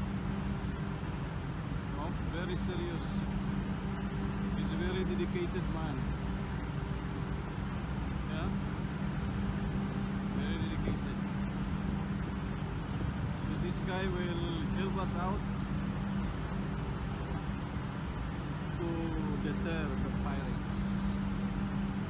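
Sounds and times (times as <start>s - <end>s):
ship engine drone: 0.0s - 22.0s
wind rumble: 0.0s - 22.0s.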